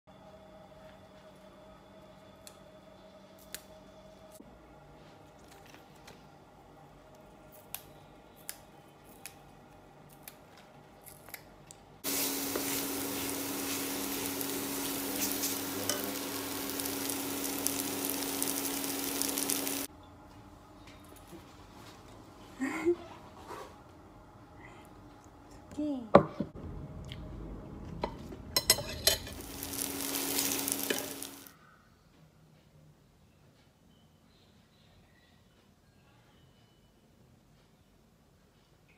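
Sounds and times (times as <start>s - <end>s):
noodles sizzling in a wok: 12.0s - 19.9s, 28.7s - 31.5s
steady hum: 12.0s - 19.9s.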